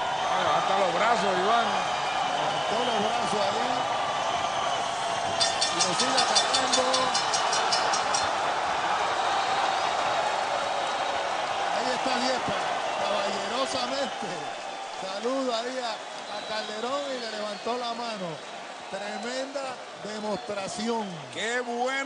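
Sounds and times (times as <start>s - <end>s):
crowd cheering and shouting: 0.0s - 22.0s
boxing ring bell struck rapidly: 5.4s - 8.3s.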